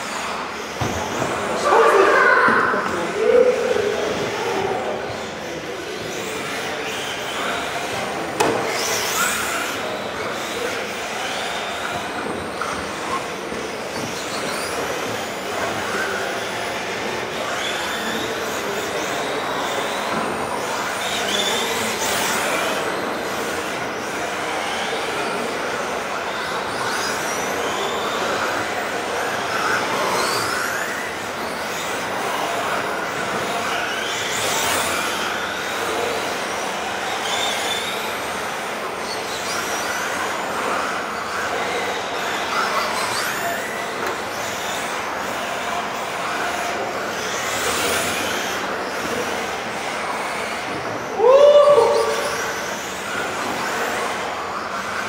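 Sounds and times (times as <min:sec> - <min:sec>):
model car motors whining: 0:00.0 - 0:55.0.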